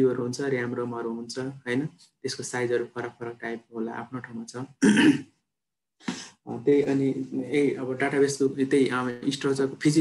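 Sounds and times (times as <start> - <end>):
man speaking: 0.0 - 5.1, 6.1 - 10.0
man clearing his throat: 4.8 - 5.4.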